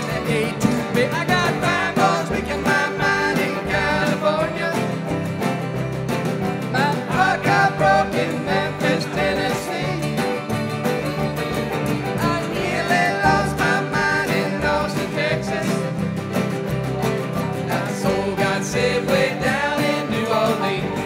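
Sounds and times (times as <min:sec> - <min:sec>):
live country bluegrass band: 0:00.0 - 0:21.0.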